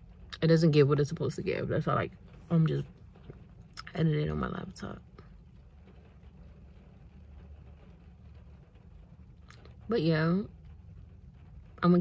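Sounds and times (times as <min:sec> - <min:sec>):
low rumble in car cabin: 0:00.0 - 0:12.0.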